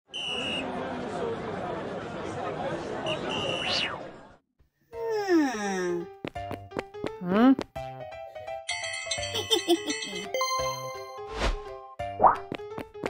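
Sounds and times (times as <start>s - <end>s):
high whistle-like tones: 0.1s - 0.6s
crowd babble: 0.2s - 4.4s.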